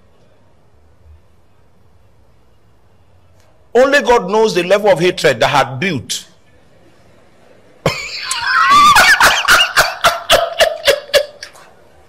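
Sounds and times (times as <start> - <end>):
person laughing loudly: 7.9 - 11.7.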